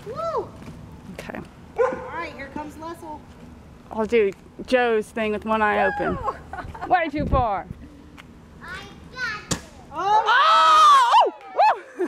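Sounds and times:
sharp thump: 9.4 - 9.8.

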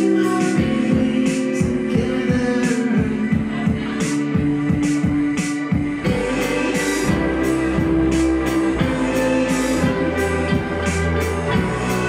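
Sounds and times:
electric guitar: 0.0 - 12.0
keyboard notes: 0.0 - 12.0
drum beat: 0.5 - 12.0.

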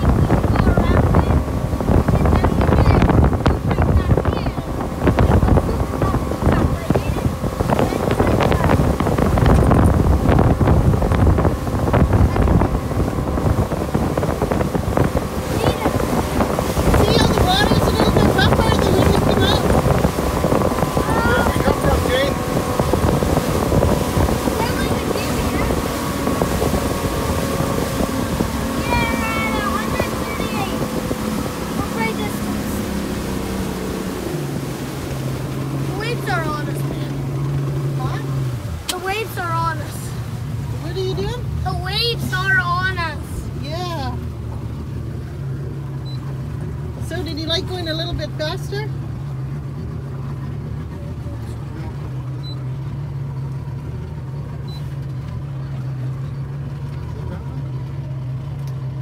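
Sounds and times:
motorboat engine running: 0.0 - 59.0
water rushing past hull: 0.0 - 59.0
wind buffeting microphone: 0.0 - 59.0.

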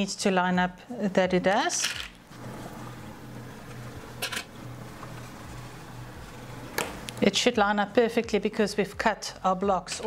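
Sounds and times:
steady low hum: 2.2 - 8.0.

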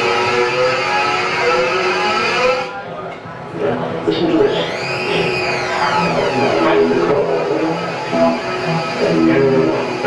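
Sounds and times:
high sweeping tone: 3.5 - 10.0
held low bass notes: 3.6 - 10.0.

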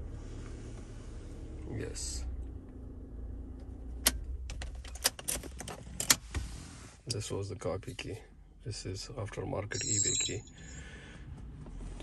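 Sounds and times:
low engine hum: 0.0 - 4.9.

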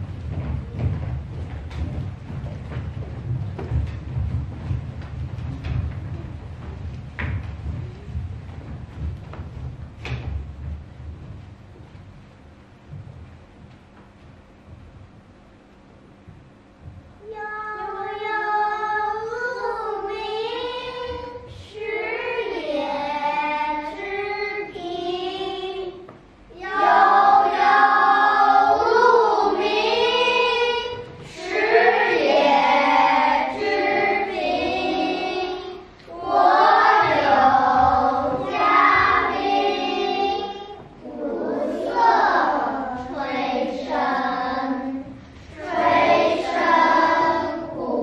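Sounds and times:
children singing in unison: 26.6 - 48.0.

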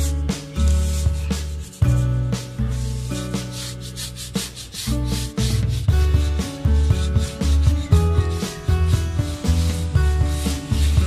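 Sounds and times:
background music with bass beat: 0.0 - 11.0
brush scrubbing rubber tyre: 0.0 - 11.0.

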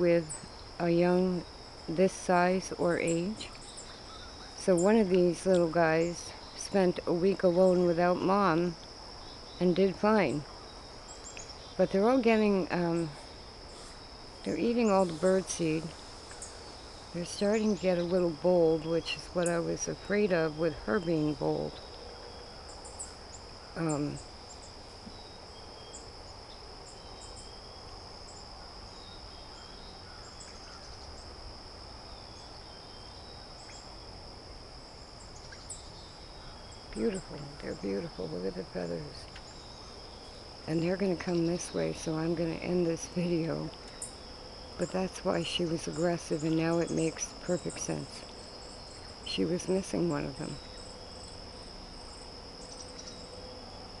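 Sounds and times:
crickets trilling: 0.0 - 54.0.

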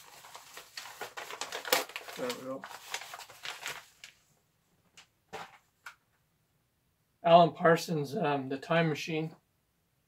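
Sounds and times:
plastic packaging crinkling: 0.0 - 4.2.

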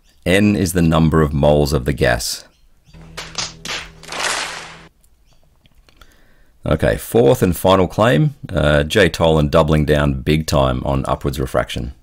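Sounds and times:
hands slapping foreheads: 3.0 - 4.9.

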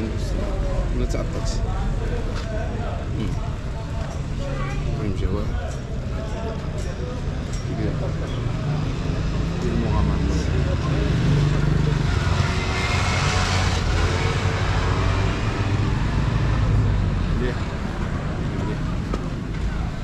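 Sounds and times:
low street rumble: 0.0 - 20.0.

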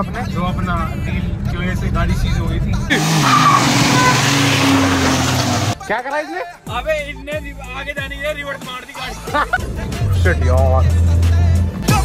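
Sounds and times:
car engine under load: 2.9 - 5.8.

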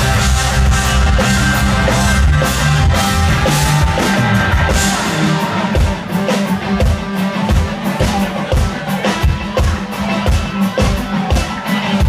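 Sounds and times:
country-rock band playing: 0.0 - 12.0.

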